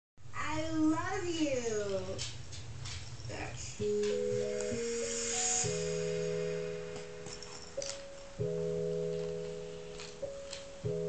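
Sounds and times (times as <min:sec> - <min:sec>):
sustained keyboard chord: 0:03.8 - 0:11.0.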